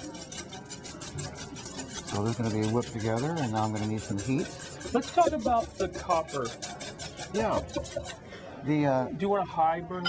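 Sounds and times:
whisk ticking against bowl: 0.0s - 8.3s.

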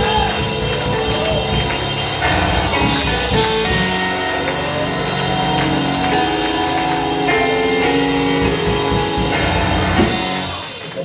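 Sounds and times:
drum kit: 0.0s - 11.0s
keyboard chords: 0.0s - 11.0s.

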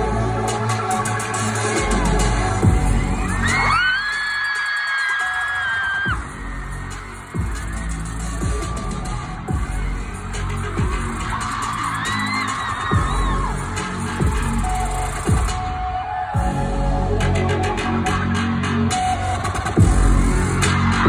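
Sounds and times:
concert music over pa: 0.0s - 21.0s.

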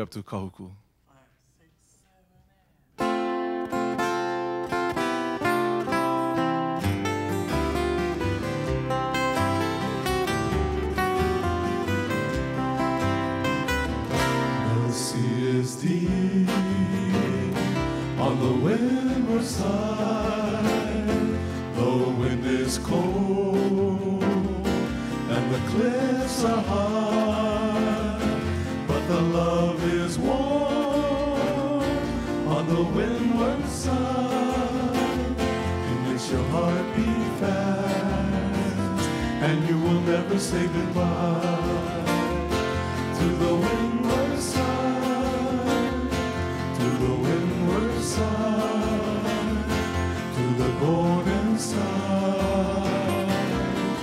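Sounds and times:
strummed guitars and ukulele: 3.0s - 54.0s
voices singing in harmony: 14.2s - 54.0s.

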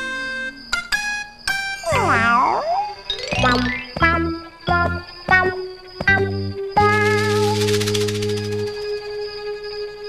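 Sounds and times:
plucked string notes: 1.9s - 4.8s.

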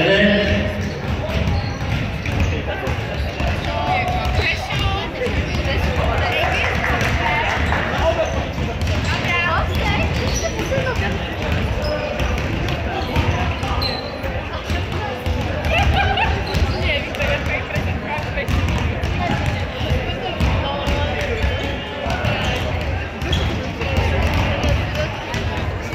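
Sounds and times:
voices talking: 0.0s - 25.9s
basketballs bouncing on wooden floor: 0.1s - 25.9s.

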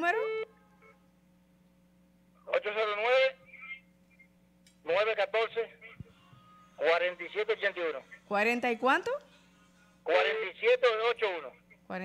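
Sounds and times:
voice on telephone line: 0.0s - 0.5s, 2.4s - 3.8s, 4.8s - 6.1s, 6.8s - 8.4s, 10.1s - 11.8s
faint phone line hum: 0.0s - 12.0s
short telephone tone: 0.2s - 1.0s.

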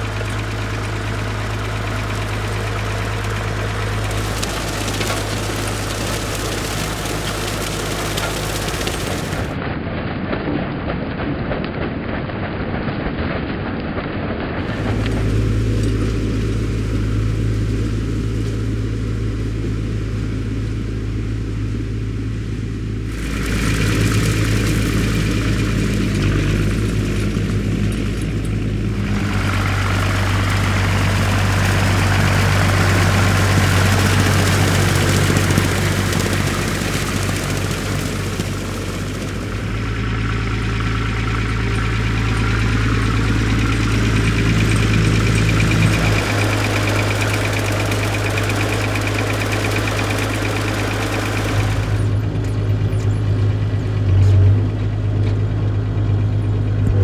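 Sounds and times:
tractor diesel engine running: 0.0s - 9.6s, 14.6s - 57.0s
rotary tedder machinery: 23.1s - 57.0s.

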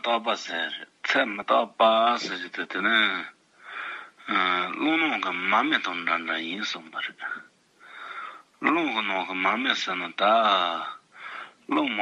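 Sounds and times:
man speaking: 0.0s - 3.4s, 4.2s - 7.5s, 8.6s - 11.0s, 11.6s - 12.0s.

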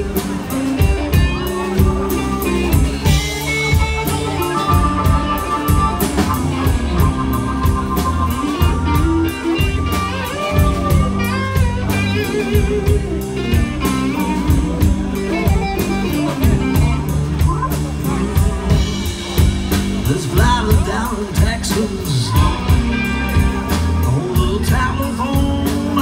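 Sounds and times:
lead guitar bending notes: 0.0s - 21.4s
live blues band playing: 0.0s - 26.0s.

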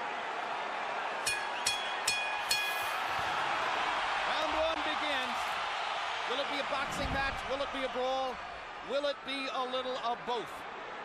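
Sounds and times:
boxing ring bell ringing: 1.3s - 3.0s.

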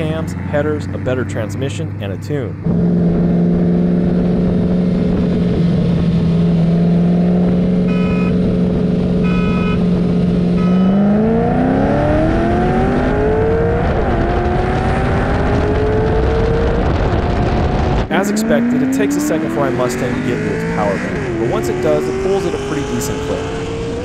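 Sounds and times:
car engines revving: 0.0s - 24.0s
countdown beeps: 7.9s - 8.4s, 9.2s - 9.8s, 10.6s - 11.0s.

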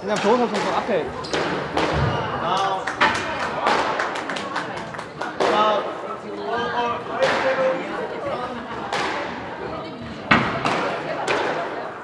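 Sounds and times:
voices speaking in reverberant room: 0.0s - 12.0s.

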